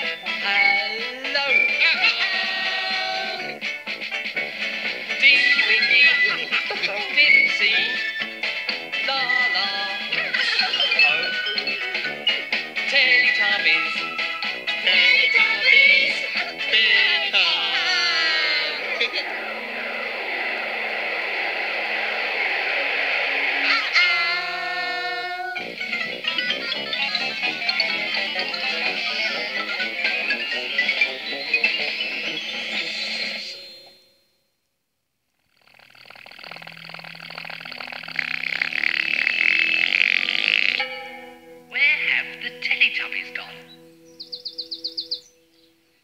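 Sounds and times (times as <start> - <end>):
children's tv music: 0.0 - 34.1, 36.2 - 46.0.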